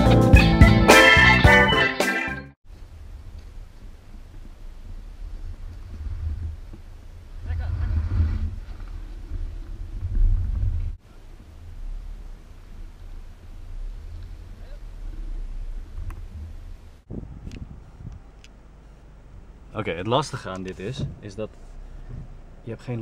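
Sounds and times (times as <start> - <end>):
wind buffeting microphone: 2.8 - 18.6, 20.7 - 22.6.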